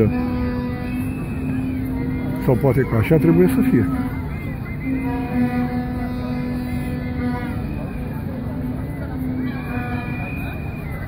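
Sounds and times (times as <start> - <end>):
long pitched tone: 0.0 - 11.0
outdoor crowd murmur: 0.0 - 11.0.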